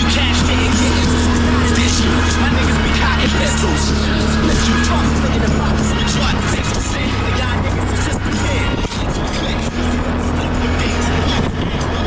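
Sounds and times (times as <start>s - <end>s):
atv engine running: 0.0s - 12.0s.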